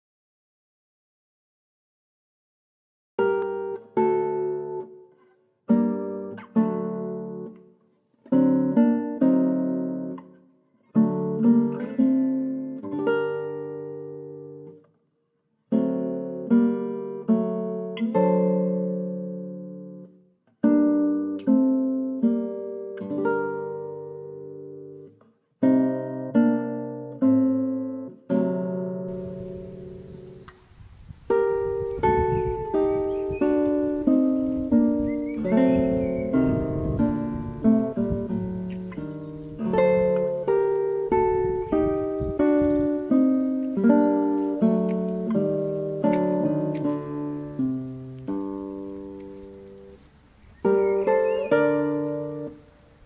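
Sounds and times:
acoustic guitar playing: 3.2 - 14.9, 15.6 - 53.0.

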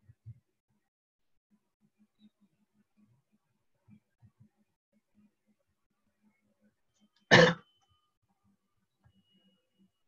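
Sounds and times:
person coughing: 7.3 - 7.6.

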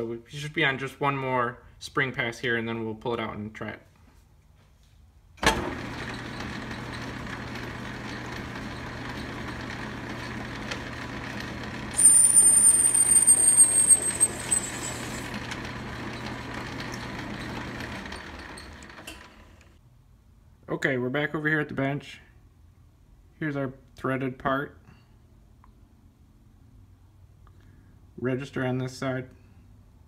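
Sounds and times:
metal lathe running: 5.7 - 19.5
high-pitched cutting squeal: 11.9 - 15.4.

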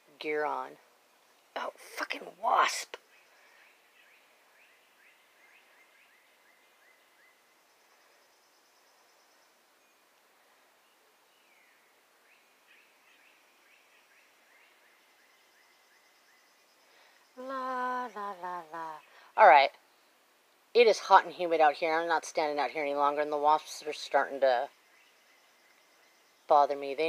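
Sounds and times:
person's voice: 17.4 - 19.7.

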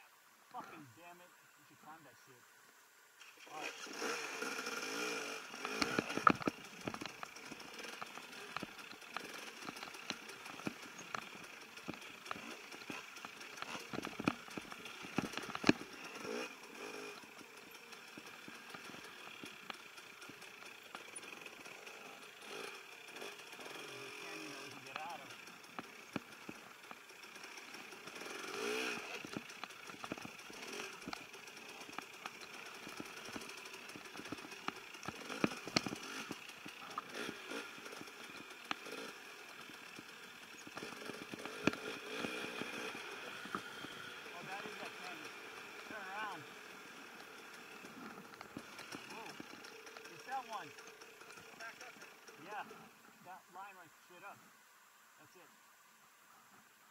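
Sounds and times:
dirt bike engine labouring: 3.2 - 54.4.

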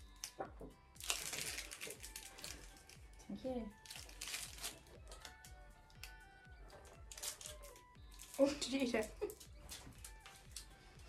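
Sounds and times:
plastic wrapper crinkling: 0.1 - 11.0.

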